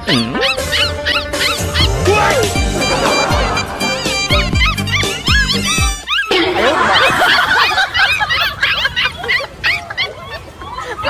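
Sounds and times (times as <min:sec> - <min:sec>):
background music: 0:00.0 - 0:06.1
puppies yipping: 0:00.0 - 0:11.0.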